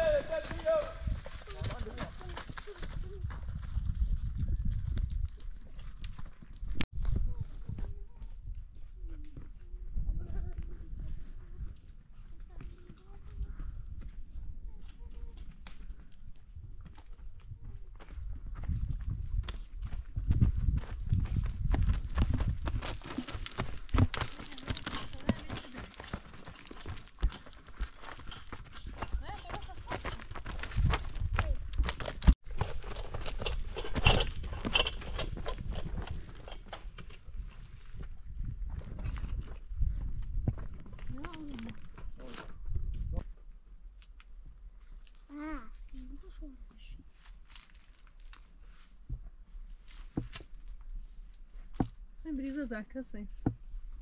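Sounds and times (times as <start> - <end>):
people calling: 0.0 - 1.8
footsteps crunching on gravel: 0.0 - 6.8, 18.0 - 36.6.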